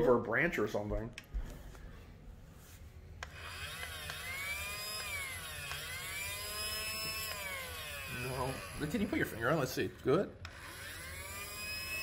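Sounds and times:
toy vacuum motor whining: 3.2 - 12.0.

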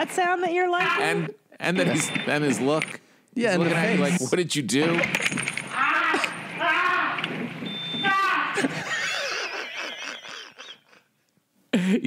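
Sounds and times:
loud laughter: 8.1 - 11.1.

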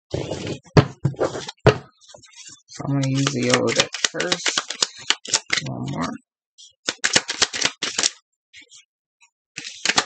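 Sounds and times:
cards being shuffled: 2.2 - 6.1, 6.8 - 8.8, 9.6 - 10.0.

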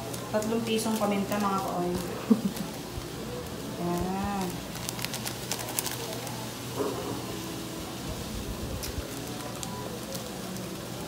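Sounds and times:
pot simmering with crackles: 0.0 - 11.0.

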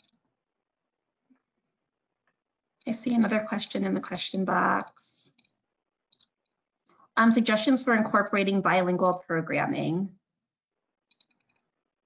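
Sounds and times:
woman's voice: 2.9 - 5.4, 7.1 - 10.2.

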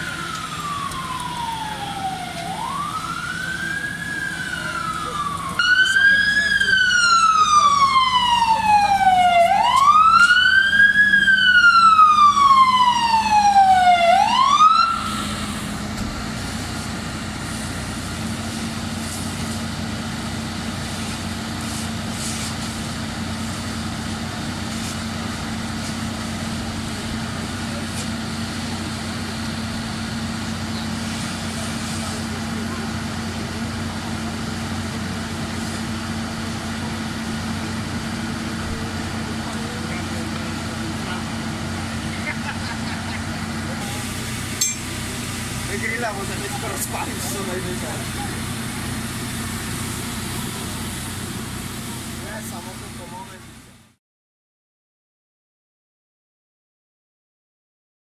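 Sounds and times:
fire engine idling: 0.0 - 54.0
fire engine siren wailing: 0.0 - 54.0.

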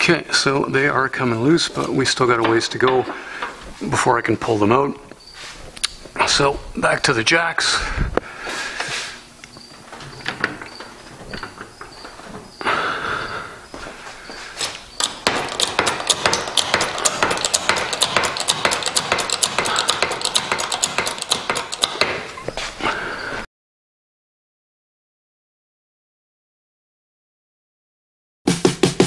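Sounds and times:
hydraulic jack clicking: 15.0 - 22.5.

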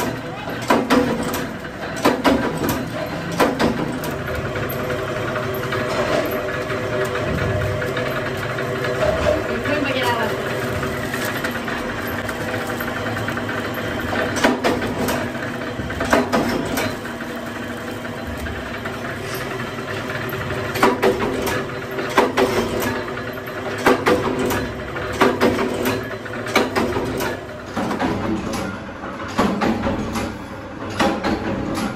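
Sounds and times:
machine humming: 0.0 - 27.9
plastic bags crackling: 6.4 - 14.4, 15.2 - 20.7.

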